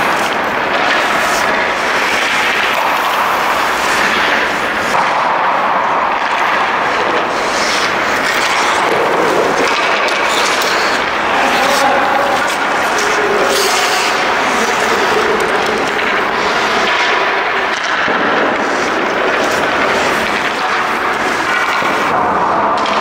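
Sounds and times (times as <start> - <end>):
loud hall noise: 0.0 - 23.0
skate blades scraping ice: 0.0 - 23.0
stick and puck knocks: 0.0 - 23.0
voices: 6.5 - 17.8.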